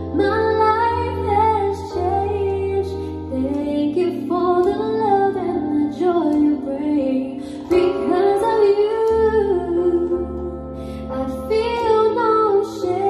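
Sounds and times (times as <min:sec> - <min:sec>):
electronic keyboard chords: 0:00.0 - 0:13.0
woman singing into microphone: 0:00.0 - 0:13.0.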